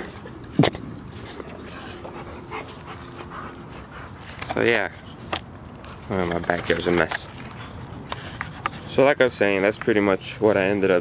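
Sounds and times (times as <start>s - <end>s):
dog panting: 1.6s - 5.3s.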